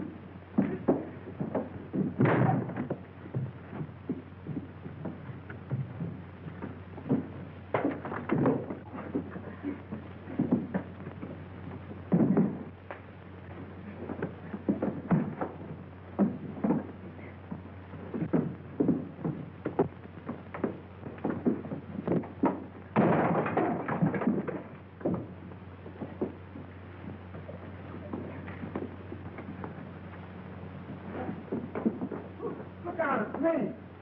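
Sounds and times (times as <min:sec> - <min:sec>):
knocks and thumps: 0:00.0 - 0:33.6.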